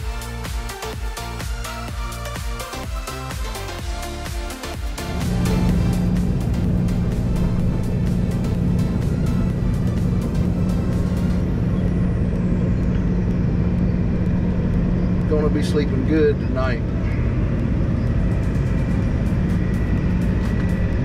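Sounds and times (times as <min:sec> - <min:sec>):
background music: 0:00.0 - 0:21.0
diesel engine droning in cab: 0:00.0 - 0:21.0.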